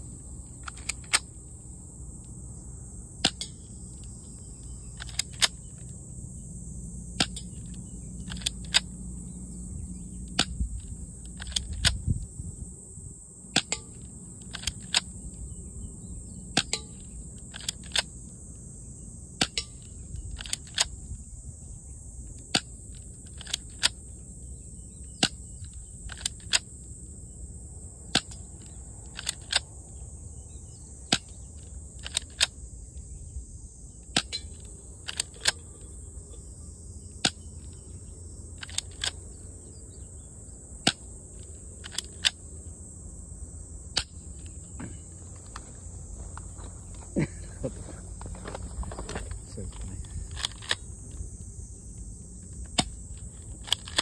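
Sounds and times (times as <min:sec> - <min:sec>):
high-pitched insect drone: 0:00.0 - 0:54.0.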